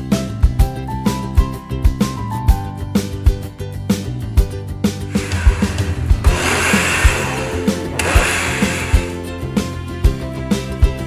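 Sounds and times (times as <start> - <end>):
blender running: 5.1 - 9.4
background music with steady beat: 5.1 - 9.5.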